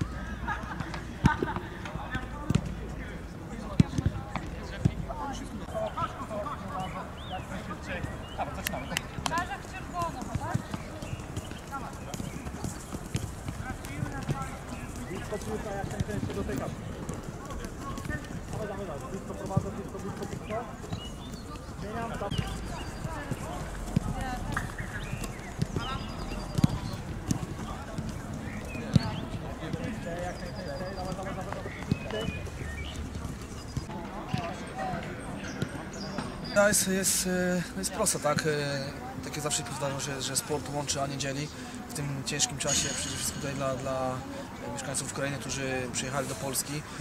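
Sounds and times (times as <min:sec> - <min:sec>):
boys calling and chattering: 0:00.0 - 0:47.0
football kicked on artificial turf: 0:23.2 - 0:30.0.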